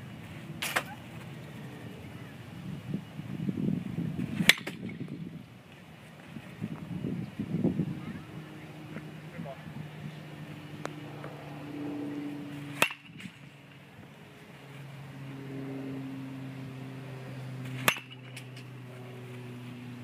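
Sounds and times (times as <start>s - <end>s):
metal bat hitting ball: 4.4s - 5.0s, 12.8s - 13.3s, 17.7s - 18.7s.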